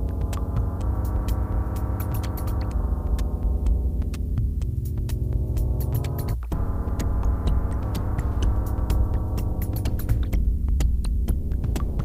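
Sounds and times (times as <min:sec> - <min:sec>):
deep bass throb: 0:00.0 - 0:12.0
sharp electronic clicks and ticks: 0:00.0 - 0:12.0.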